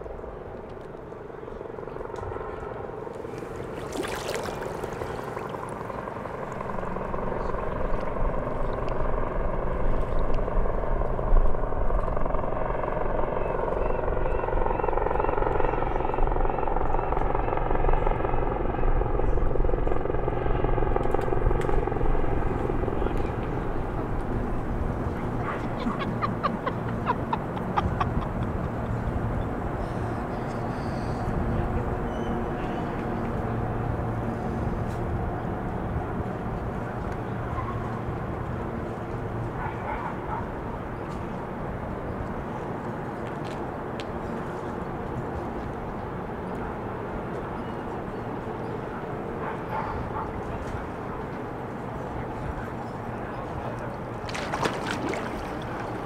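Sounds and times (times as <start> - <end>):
aircraft engine drone: 0.0 - 39.6
low city hum: 0.0 - 56.0.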